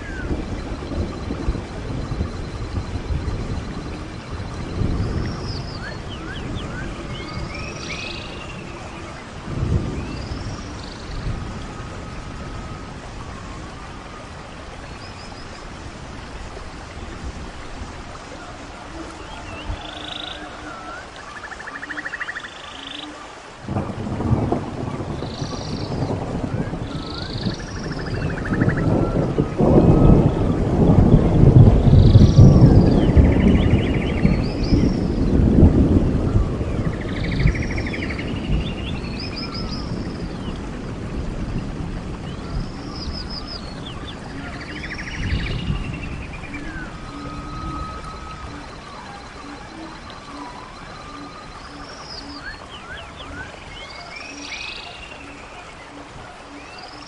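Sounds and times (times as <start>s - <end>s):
thunder rolling: 0.0s - 21.0s, 23.6s - 54.6s
birds chirping: 0.0s - 57.0s
steady rain: 0.0s - 57.0s.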